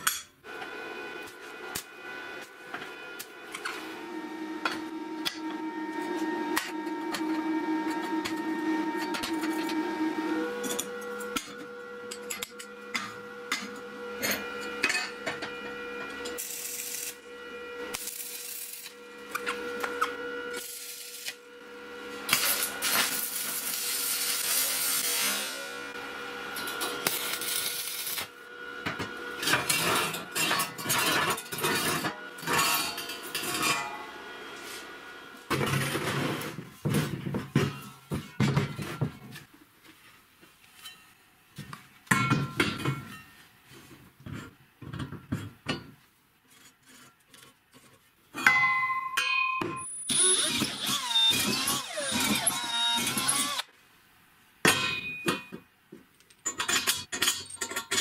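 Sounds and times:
power tool working steel: 0.4s - 36.6s, 49.8s - 53.7s.

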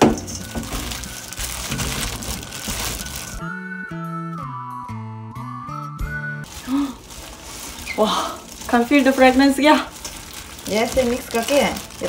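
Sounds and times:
wet crinkling rustle of mixing: 0.0s - 3.4s, 6.4s - 12.0s
whistle-like music cue: 2.7s - 6.5s.

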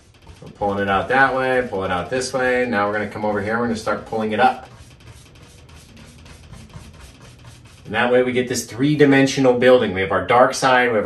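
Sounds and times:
bristle brush rubbing on canvas: 0.0s - 8.7s.

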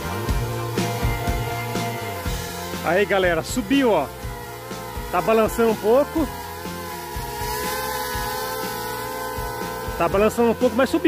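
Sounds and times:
drone propellers buzzing whine: 0.0s - 11.0s.

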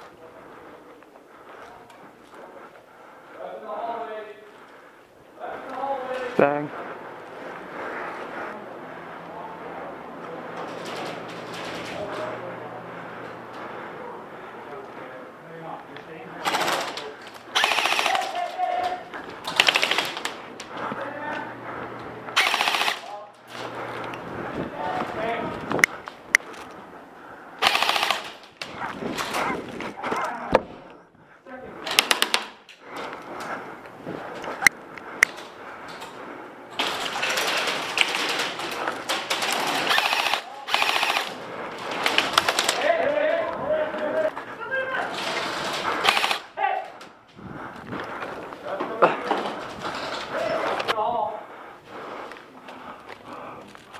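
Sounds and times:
airsoft rifles firing full-auto: 16.4s - 20.4s, 22.3s - 23.7s, 27.6s - 28.5s, 31.8s - 32.6s, 36.8s - 43.0s, 45.4s - 46.6s.

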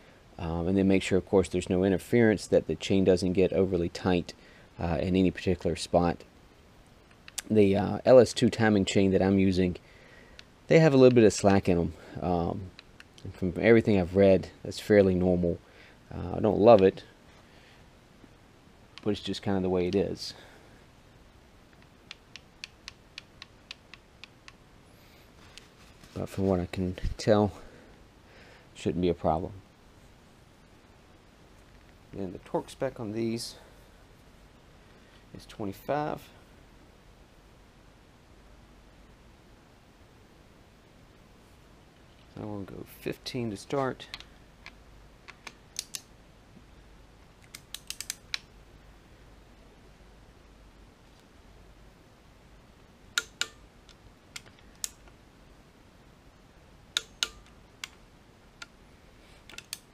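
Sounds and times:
socket wrench clicking: 44.1s - 46.1s, 47.4s - 48.5s, 53.2s - 55.1s, 57.0s - 58.0s, 59.5s - 59.9s
ratchet wrench clicking: 47.5s - 48.4s.

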